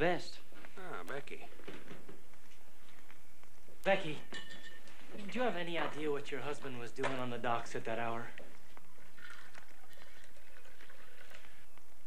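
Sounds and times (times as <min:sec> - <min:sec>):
china clinking: 0:04.2 - 0:05.4
tea trickling into cup: 0:08.9 - 0:11.6.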